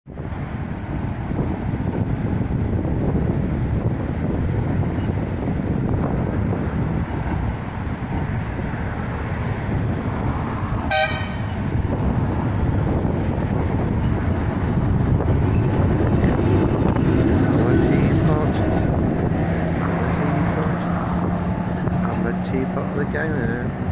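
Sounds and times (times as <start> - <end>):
road traffic: 0.0 - 23.9
wind on microphone: 0.1 - 23.9
tram horn toot: 10.8 - 11.8.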